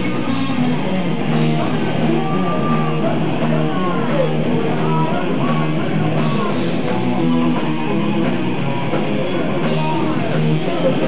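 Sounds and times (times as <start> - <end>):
bass: 0.0 - 11.0
drums: 0.0 - 11.0
electric guitar: 0.0 - 11.0.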